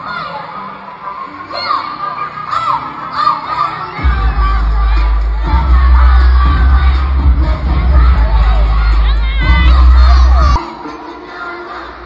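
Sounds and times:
children's voices: 0.0 - 12.0
high voices shouting and singing: 0.0 - 12.0
loud concert music with bass: 0.0 - 12.0.

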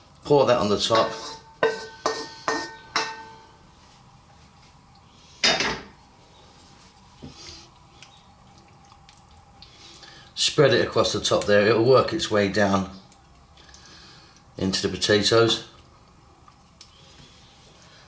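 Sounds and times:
pan clattering: 0.9 - 3.4
metal pan knocking: 1.0 - 3.4.

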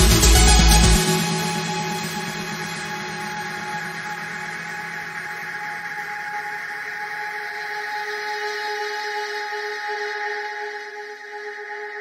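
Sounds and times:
synth bass: 0.0 - 5.2
sustained synth pads and drones: 0.0 - 12.0.

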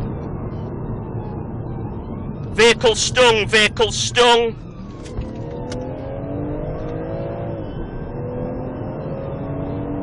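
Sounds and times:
road noise: 0.0 - 10.0
car engine accelerating: 5.4 - 10.0.

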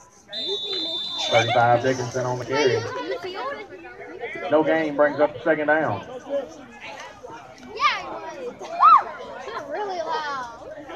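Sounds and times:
background chatter: 0.0 - 10.9.

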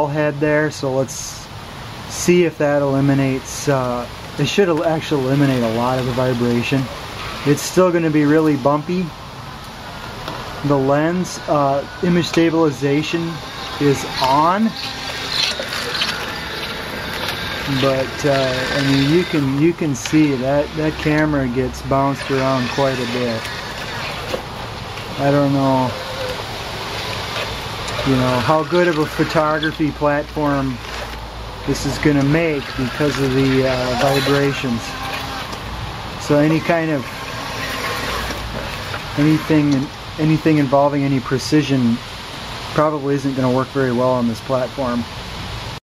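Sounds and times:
robot motors and tracks rattling: 10.2 - 39.9.

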